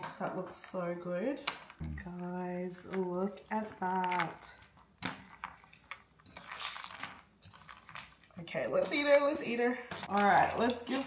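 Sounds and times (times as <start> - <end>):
spoon stirring ice in a glass bowl: 2.7 - 11.0.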